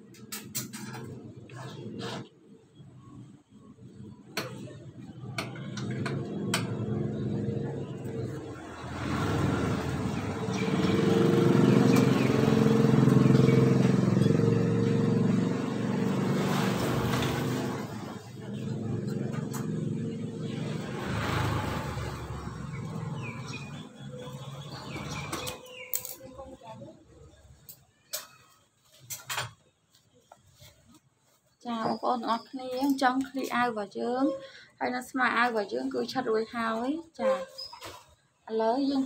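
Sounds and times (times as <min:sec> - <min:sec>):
motor vehicle passing: 0:05.5 - 0:27.0.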